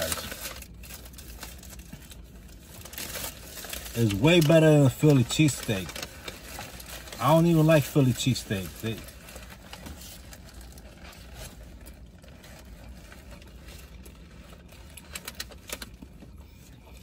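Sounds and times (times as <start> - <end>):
chewing a sandwich: 0.0 - 17.0
low hum in a car cabin: 0.0 - 17.0.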